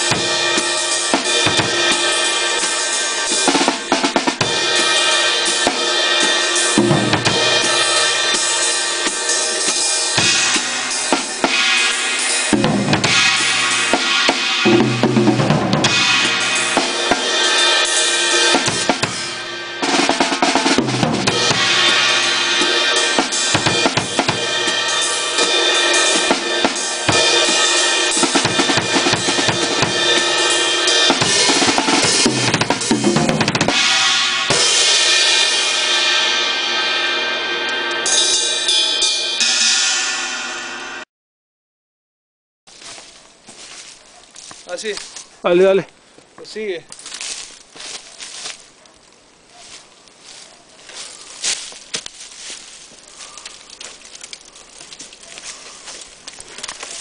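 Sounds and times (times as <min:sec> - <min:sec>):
drum kit played with sticks: 0:00.0 - 0:41.0
ringing cymbals: 0:33.7 - 0:41.0.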